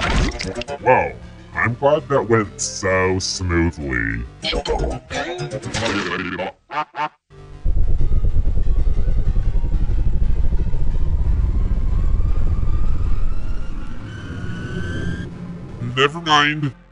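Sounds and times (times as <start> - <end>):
loud low rumbling: 7.4 - 16.1
faint rising whine: 7.4 - 16.3.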